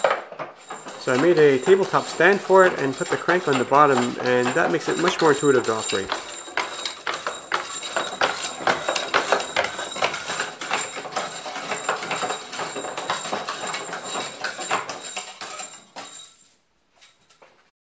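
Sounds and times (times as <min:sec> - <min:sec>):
wooden knocks and clicks clattering: 0:00.0 - 0:15.7.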